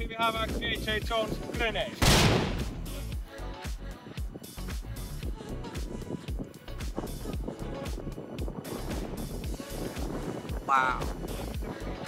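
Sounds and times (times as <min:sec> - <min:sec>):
background music: 0:00.0 - 0:12.0
explosion: 0:02.0 - 0:02.8.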